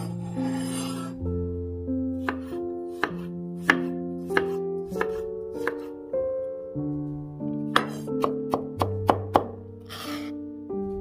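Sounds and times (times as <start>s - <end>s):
background music: 0.0s - 11.0s
knife chopping on wooden board: 2.2s - 6.0s, 7.7s - 10.1s.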